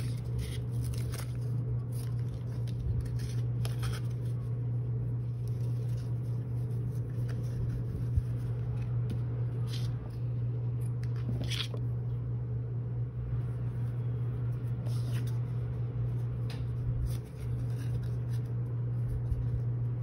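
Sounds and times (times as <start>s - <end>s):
ribbon rustling: 0.0s - 10.2s, 13.7s - 19.8s
steady low hum: 0.0s - 20.0s.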